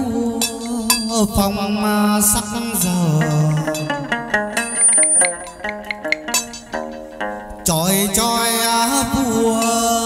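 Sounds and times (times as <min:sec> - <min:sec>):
plucked string melody: 0:00.0 - 0:10.0
clicking percussion: 0:03.3 - 0:07.0
high ringing tone: 0:04.6 - 0:06.6.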